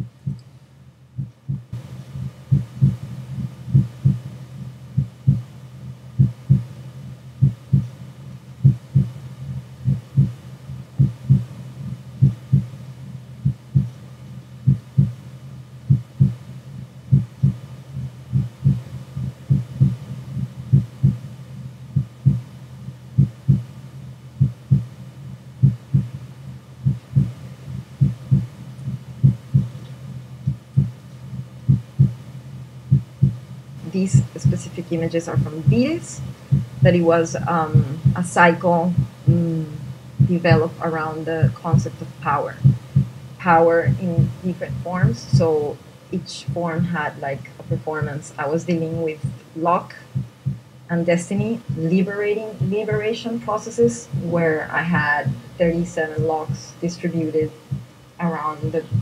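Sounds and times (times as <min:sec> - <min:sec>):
heartbeat: 0:00.0 - 0:00.5, 0:01.1 - 0:06.8, 0:07.4 - 0:23.8, 0:24.4 - 0:25.0, 0:25.6 - 0:32.2, 0:32.9 - 0:40.8, 0:41.4 - 0:45.8, 0:46.4 - 0:50.7, 0:51.4 - 0:56.7, 0:57.5 - 0:59.0
faint steady hum: 0:00.0 - 0:59.0.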